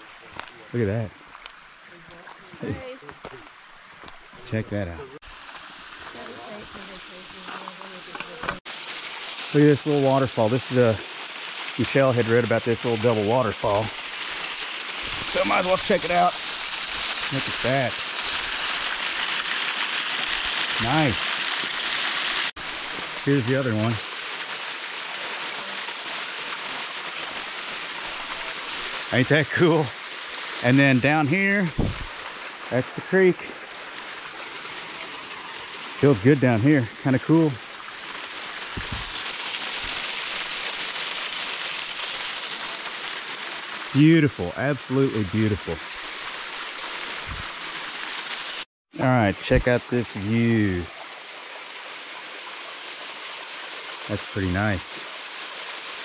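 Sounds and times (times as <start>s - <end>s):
water splashing onto rocks: 1.2s - 4.4s, 5.2s - 48.7s.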